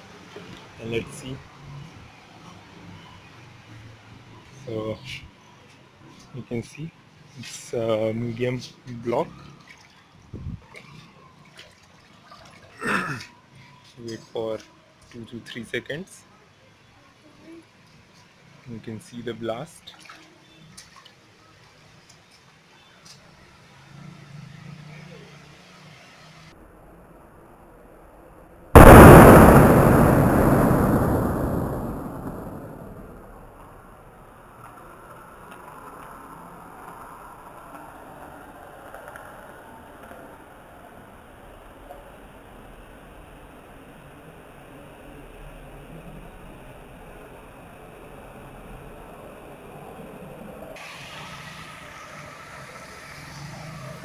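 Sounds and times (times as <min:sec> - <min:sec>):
water background noise: 0:00.0 - 0:30.1
low thud falling in pitch: 0:28.8 - 0:33.3
loud explosion blast: 0:28.8 - 0:33.8.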